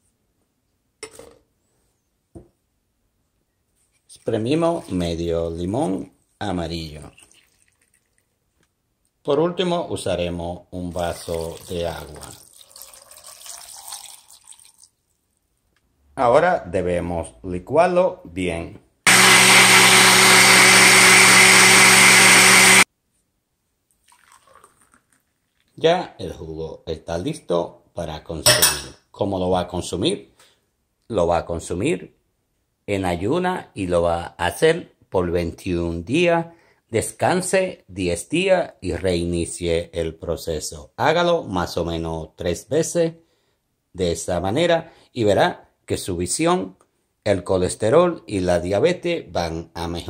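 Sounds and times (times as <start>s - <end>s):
blender motor whirring: 19.1s - 22.9s.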